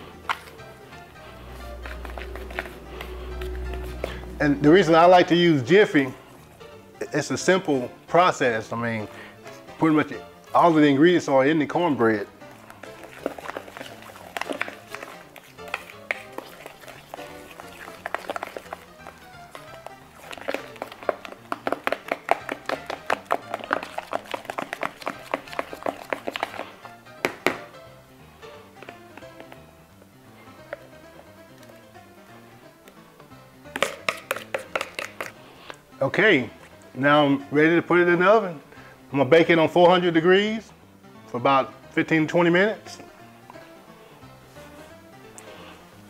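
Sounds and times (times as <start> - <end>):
background music: 0.0 - 46.0
batter stirred in a bowl: 0.1 - 5.2, 11.4 - 29.8, 33.6 - 36.8.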